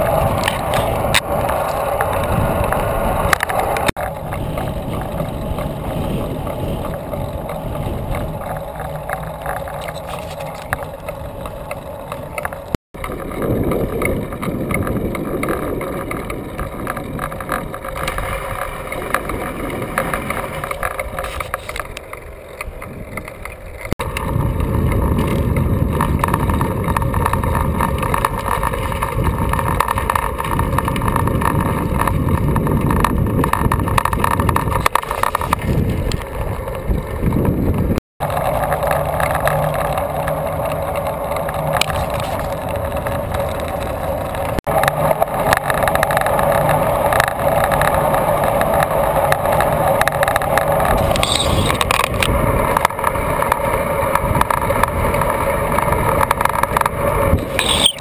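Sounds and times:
wind rushing over microphone: 0:00.0 - 0:21.9, 0:24.0 - 0:58.0
bicycle road noise: 0:00.0 - 0:58.0.

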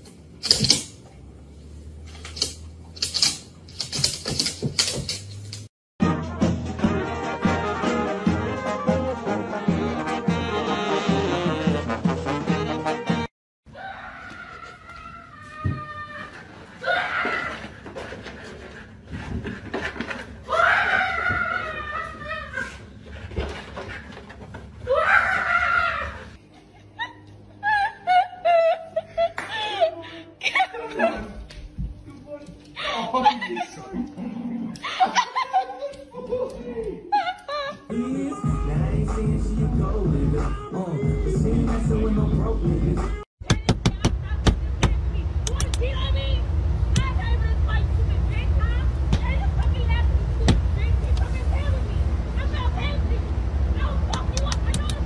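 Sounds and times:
loud high rising cry: 0:24.9 - 0:26.4
low rumble: 0:44.2 - 0:55.0.

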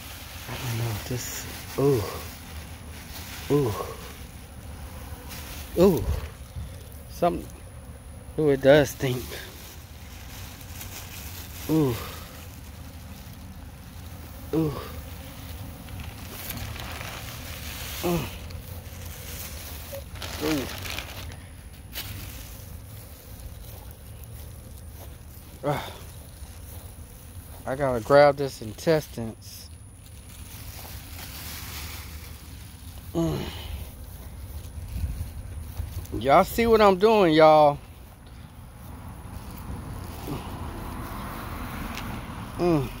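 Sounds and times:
low outdoor rumble: 0:00.0 - 0:43.0
man groaning in disgust: 0:00.5 - 0:02.3, 0:03.4 - 0:04.2, 0:05.7 - 0:06.4, 0:11.6 - 0:12.4, 0:14.4 - 0:15.1, 0:17.9 - 0:18.5, 0:25.6 - 0:26.1, 0:33.1 - 0:33.8, 0:40.2 - 0:40.8, 0:42.5 - 0:43.0.

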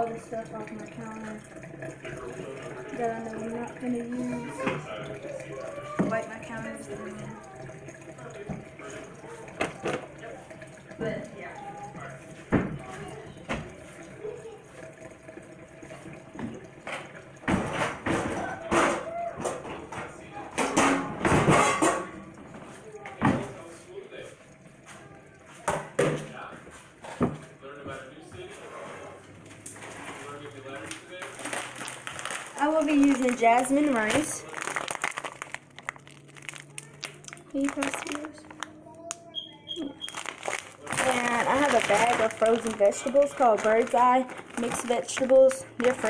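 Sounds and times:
kitchen items knocking on counter: 0:17.4 - 0:22.2, 0:25.7 - 0:26.3.

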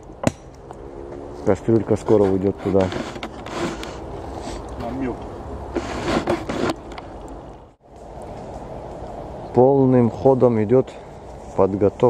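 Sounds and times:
steady outdoor hiss: 0:00.0 - 0:12.0.

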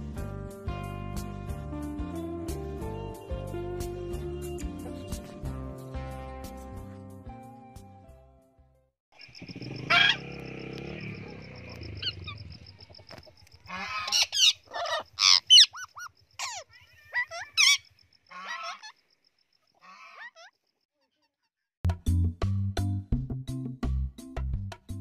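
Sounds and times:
music: 0:00.0 - 0:08.9, 0:21.9 - 0:25.0
bird harsh rising call: 0:09.3 - 0:11.1
parrots squawking: 0:09.8 - 0:10.2, 0:13.7 - 0:19.0, 0:19.8 - 0:20.5.

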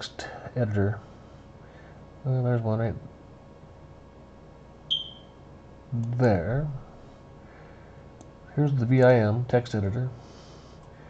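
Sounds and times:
quiet steady hum: 0:00.0 - 0:11.0
short high beep: 0:04.9 - 0:05.4.

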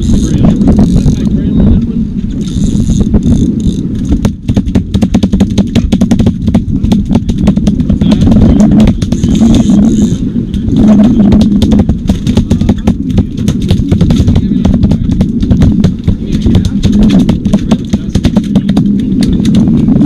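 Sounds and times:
fishing reels clicking: 0:00.0 - 0:01.3, 0:02.3 - 0:04.3, 0:09.0 - 0:10.2
boat engine low rumble: 0:00.0 - 0:20.0.

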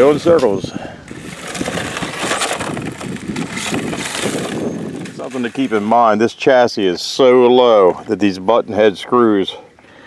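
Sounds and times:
rc car chassis scraping on asphalt: 0:00.0 - 0:06.6.

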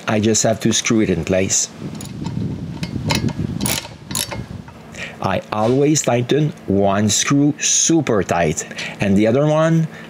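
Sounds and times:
ratchet wrench clicking: 0:01.9 - 0:04.8.

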